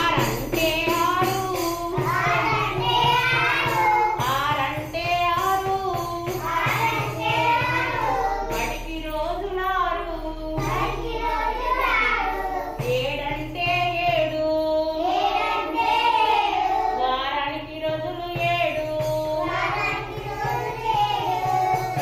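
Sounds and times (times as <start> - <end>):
frame drum with jingles: 0.0 - 22.0
person singing children's song: 0.0 - 22.0.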